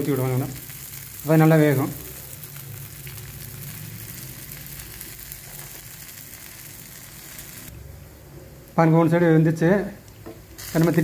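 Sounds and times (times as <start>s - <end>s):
flatbread sizzling in oil: 0.0s - 7.7s, 10.4s - 11.0s.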